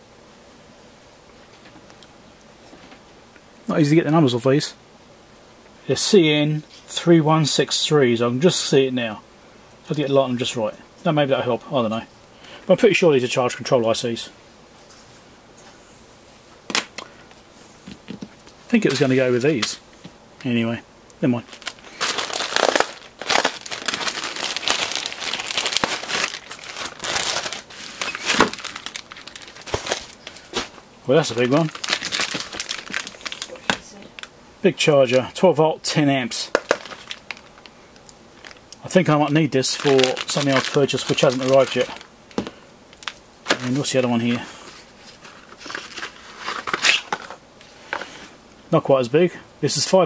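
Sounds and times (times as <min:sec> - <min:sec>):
clear plastic bag crinkling: 0:21.3 - 0:34.3, 0:36.5 - 0:37.7, 0:38.4 - 0:44.0
plastic mailer bag crinkling: 0:21.3 - 0:34.3, 0:36.3 - 0:37.8, 0:38.4 - 0:47.4.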